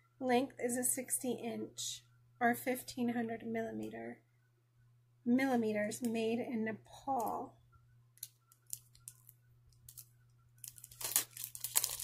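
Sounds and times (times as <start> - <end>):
packaging crinkling and rustling: 8.2 - 12.0.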